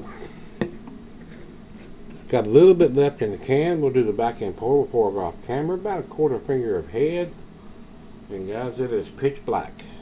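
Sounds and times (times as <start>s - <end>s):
steady room hum: 0.0s - 10.0s.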